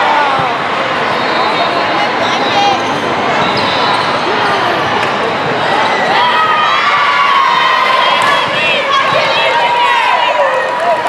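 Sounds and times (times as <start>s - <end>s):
hubbub of voices in a hall: 0.0s - 11.0s.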